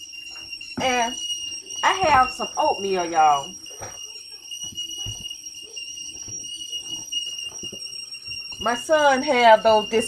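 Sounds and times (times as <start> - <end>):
tea kettle whistling: 0.0 - 10.0.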